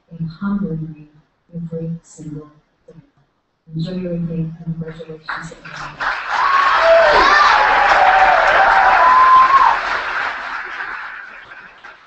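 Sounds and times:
audience applauding and cheering: 5.9s - 12.0s.

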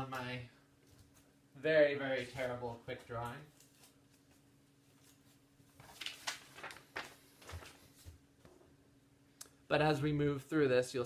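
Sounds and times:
faint steady hum: 0.0s - 11.0s
paper rustling and crackling: 2.2s - 8.2s.

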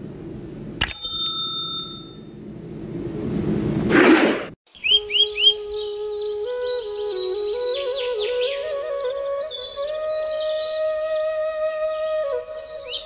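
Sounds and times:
bright bell ding: 0.8s - 2.4s
rising whoosh: 3.9s - 4.6s
bird chirps: 4.7s - 13.0s
flute-like music: 4.9s - 13.0s.

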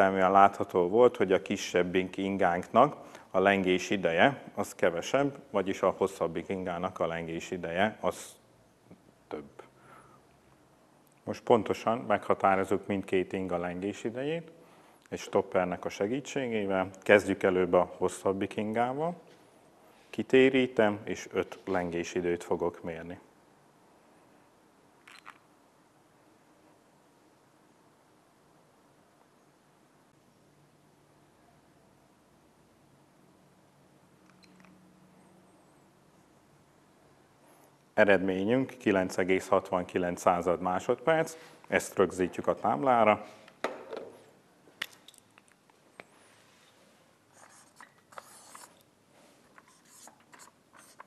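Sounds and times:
objects set down on wooden bench: 43.6s - 44.2s
scratchy rustle: 46.2s - 51.0s.

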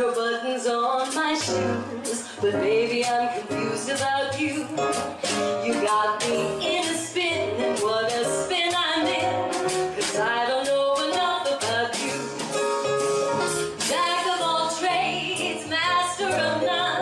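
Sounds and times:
woman singing jazz: 0.0s - 12.6s, 13.5s - 17.0s
jazz band playing: 0.0s - 17.0s
bass line: 1.4s - 17.0s.

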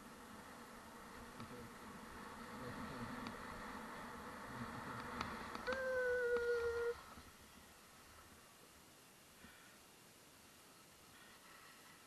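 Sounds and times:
person humming: 5.7s - 7.0s.

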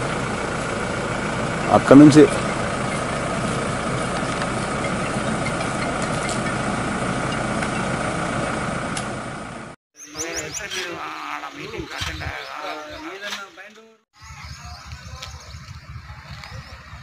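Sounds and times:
birds chirping: 0.0s - 8.4s, 10.0s - 17.0s
vehicle engine idling: 0.0s - 10.6s
voices talking: 1.5s - 8.0s, 10.0s - 17.0s.

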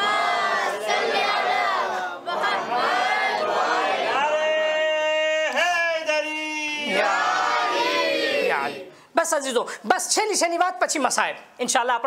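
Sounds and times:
congregation chanting in unison: 0.0s - 6.2s, 6.8s - 8.9s.

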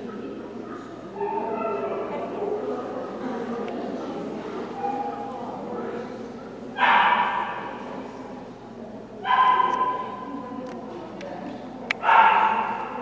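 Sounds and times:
dog barking with echo: 6.8s - 7.8s, 9.2s - 10.2s, 12.0s - 13.0s.

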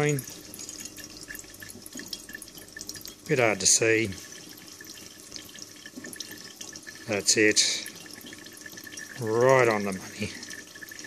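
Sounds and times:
liquid dripping and trickling: 0.0s - 11.0s.

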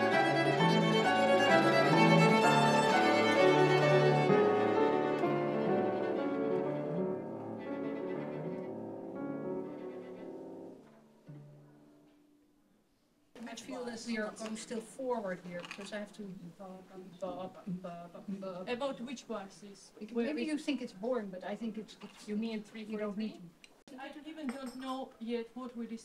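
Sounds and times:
string quartet playing: 0.0s - 11.5s.

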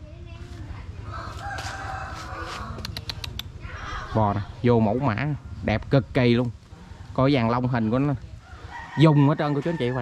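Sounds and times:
rooster crowing: 1.1s - 2.8s, 8.4s - 10.0s.

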